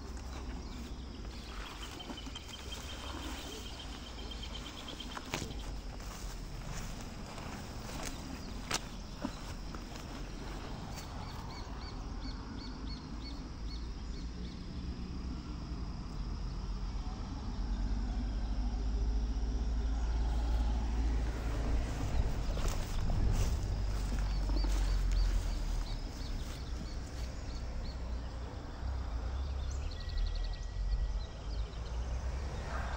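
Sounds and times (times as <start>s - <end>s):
low rumble: 14.6s - 27.9s.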